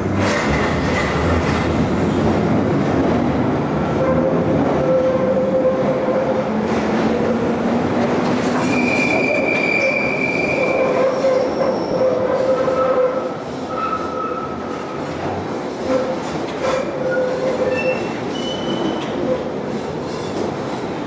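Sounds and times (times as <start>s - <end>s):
train wheels rumbling on rail: 0.0s - 21.0s
train wheels squealing: 8.6s - 14.7s, 16.7s - 19.4s.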